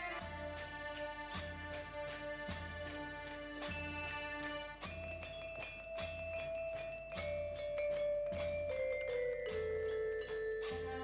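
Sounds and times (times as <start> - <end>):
accordion band music: 0.0 - 6.2.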